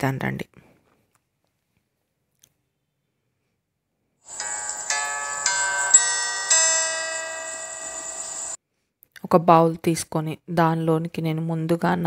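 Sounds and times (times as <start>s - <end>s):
bell-like chime jingle: 4.3s - 8.6s.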